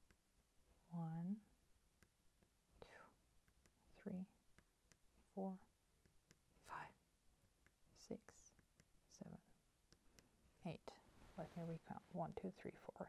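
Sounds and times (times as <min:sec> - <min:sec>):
person whispering counting: 0:00.8 - 0:01.5, 0:02.8 - 0:03.2, 0:03.9 - 0:04.4, 0:05.2 - 0:05.7, 0:06.6 - 0:07.0, 0:07.9 - 0:09.6, 0:10.6 - 0:13.0.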